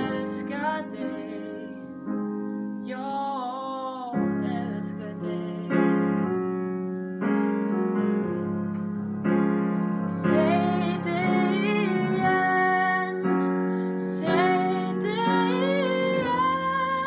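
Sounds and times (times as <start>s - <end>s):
woman singing: 0.0s - 6.4s, 10.1s - 17.0s
piano ballad chords: 0.0s - 17.0s.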